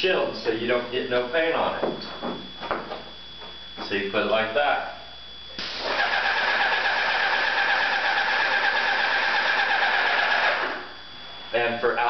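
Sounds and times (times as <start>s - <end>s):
paint spray gun hissing: 5.6s - 10.8s.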